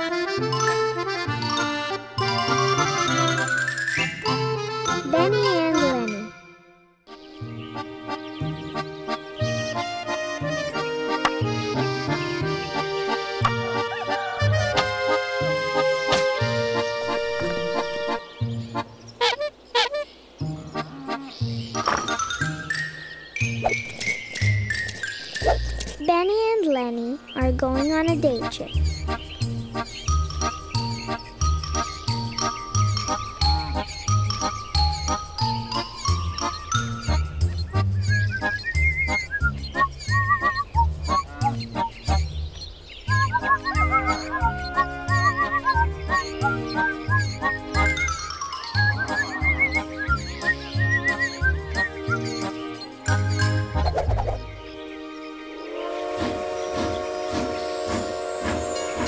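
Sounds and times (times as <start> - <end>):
bright tinkling melody: 30.1 - 37.5, 46.2 - 51.4
steam train whistle chord: 55.5 - 59.0
steam train chugging: 55.6 - 59.0.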